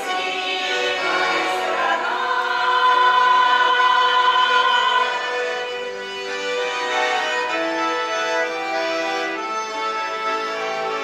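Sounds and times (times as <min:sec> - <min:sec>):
accordions playing folk music: 0:00.0 - 0:11.0.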